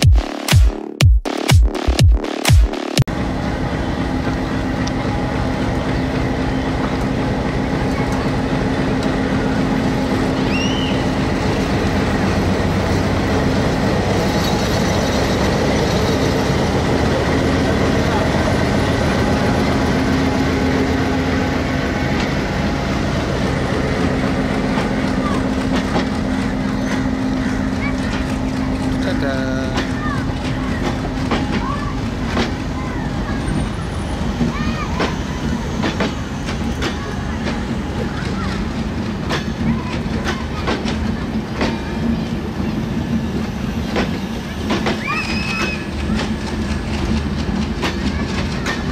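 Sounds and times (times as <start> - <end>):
train wheels rumbling on rails: 3.0 - 48.9
locomotive engine humming: 3.1 - 48.9.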